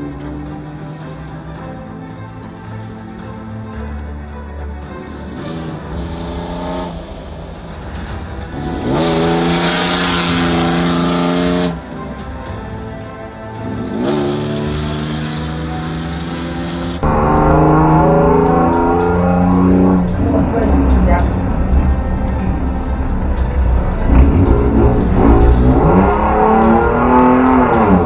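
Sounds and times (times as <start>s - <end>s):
background music: 0.0s - 28.0s
truck engine revving: 5.2s - 11.8s, 13.6s - 28.0s.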